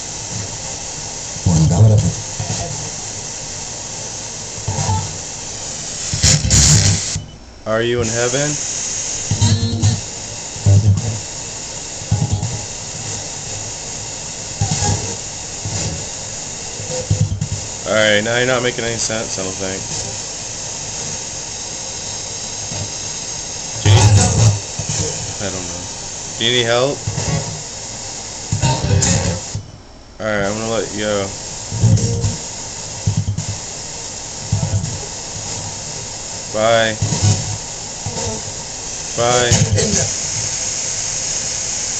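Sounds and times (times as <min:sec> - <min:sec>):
chopped broadcast voices and music: 0:00.0 - 0:41.9
radio static hiss: 0:00.0 - 0:41.9.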